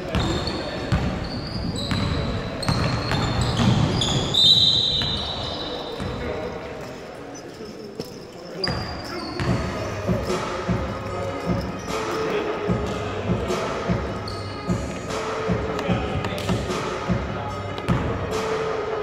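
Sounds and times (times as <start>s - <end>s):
high whistle tone: 4.0s - 5.9s.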